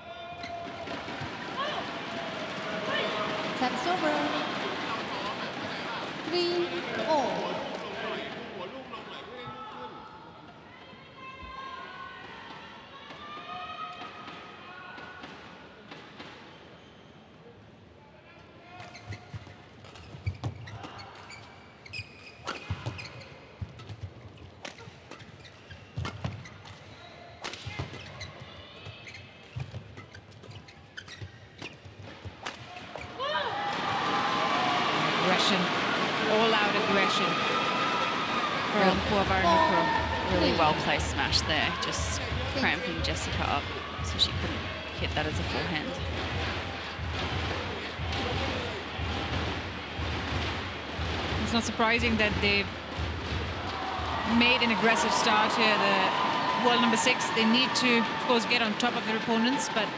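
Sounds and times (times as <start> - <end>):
voices and crowd: 0.0 - 23.8, 31.8 - 59.9
shoe squeaks on court: 18.8 - 31.9.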